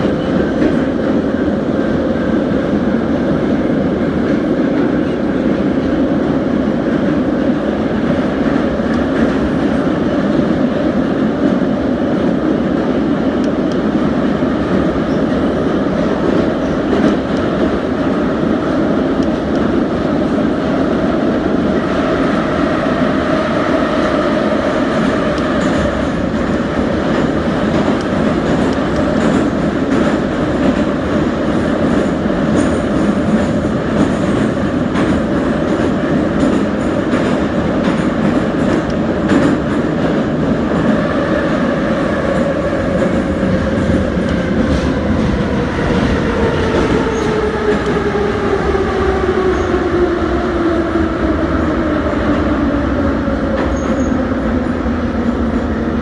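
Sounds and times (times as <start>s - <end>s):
train wheel rolling noise: 0.0s - 56.0s.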